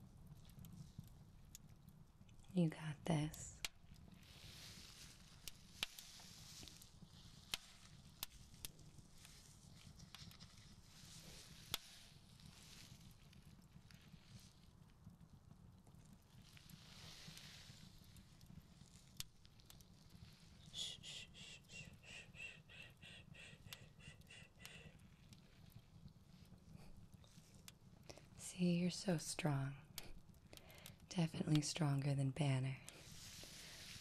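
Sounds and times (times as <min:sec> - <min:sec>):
swab brushing near microphone: 0:32.9 - 0:34.0.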